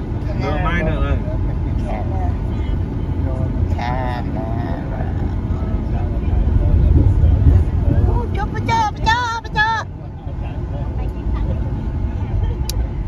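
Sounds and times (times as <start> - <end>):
car driving rumble: 0.0 - 13.0.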